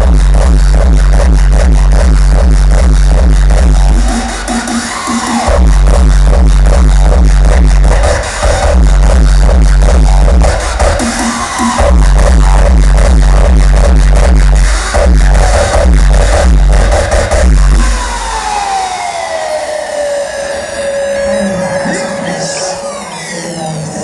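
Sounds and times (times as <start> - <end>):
pounding kick drum: 0.0 - 4.3, 5.5 - 7.9, 8.5 - 11.1, 11.8 - 18.1
electronic dance music: 0.0 - 24.0
synth tone sliding down: 17.8 - 24.0.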